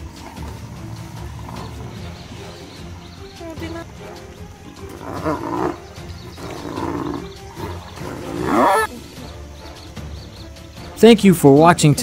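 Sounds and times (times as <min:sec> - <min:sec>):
hyenas growling: 0:00.0 - 0:09.0.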